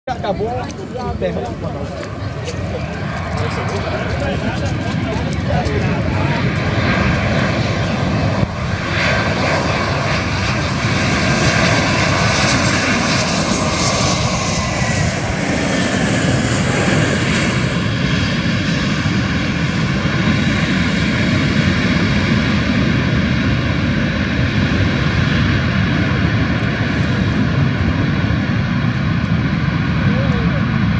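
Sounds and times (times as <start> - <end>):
falling engine whine: 0.1 - 30.9
jet engine noise: 0.1 - 30.9.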